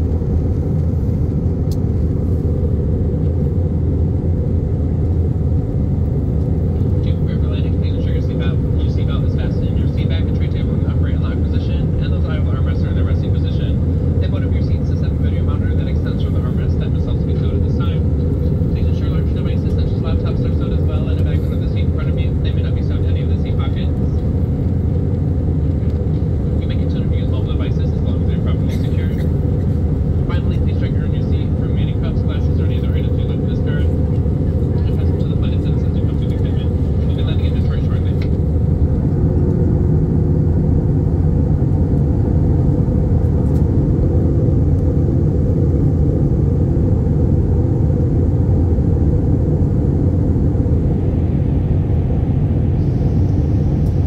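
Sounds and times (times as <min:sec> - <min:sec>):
aircraft cabin drone: 0:00.0 - 0:54.0.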